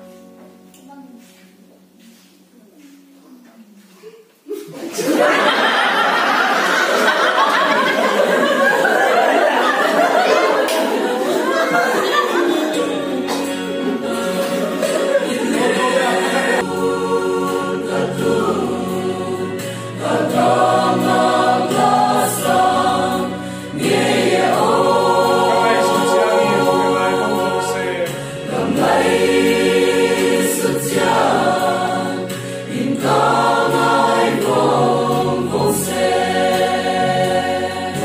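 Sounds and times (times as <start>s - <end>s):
mixed choir singing gospel: 4.7s - 38.0s.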